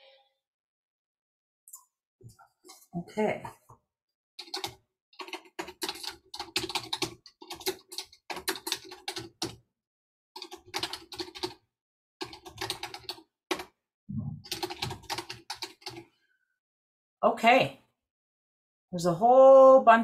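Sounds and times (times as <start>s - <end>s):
typing on computer keyboard: 4.4s - 9.6s, 10.4s - 11.6s, 12.2s - 13.8s, 14.4s - 16.1s.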